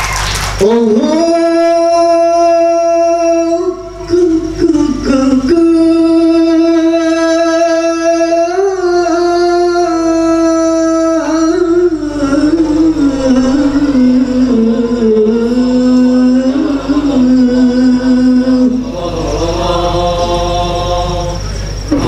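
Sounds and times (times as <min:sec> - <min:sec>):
boy singing into a microphone: 0:00.6 - 0:22.0.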